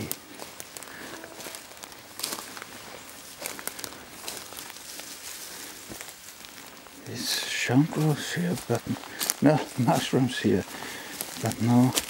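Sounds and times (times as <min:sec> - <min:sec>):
footsteps on forest floor: 0:00.0 - 0:12.0
twigs crackling underfoot: 0:00.0 - 0:12.0.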